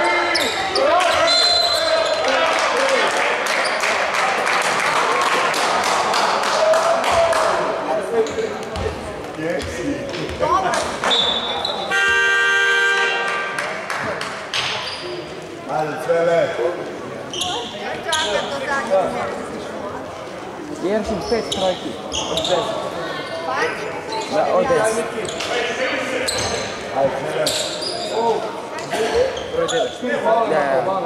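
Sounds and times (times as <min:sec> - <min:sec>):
referee's whistle: 0:00.3 - 0:02.2, 0:11.1 - 0:13.2
game horn: 0:11.9 - 0:13.6.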